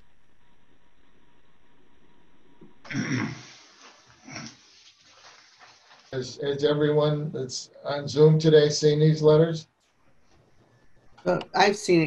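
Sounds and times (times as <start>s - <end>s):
faint background hiss: 0.0s - 12.0s
person clearing throat: 2.9s - 3.6s.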